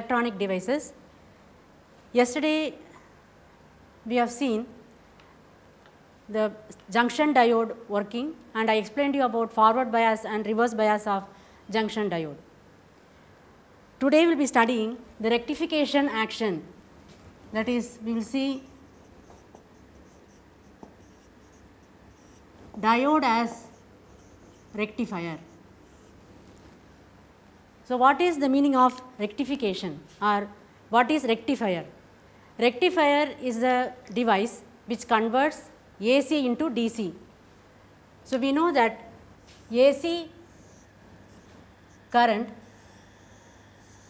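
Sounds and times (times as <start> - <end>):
marker writing on whiteboard: 18.5 - 26.2.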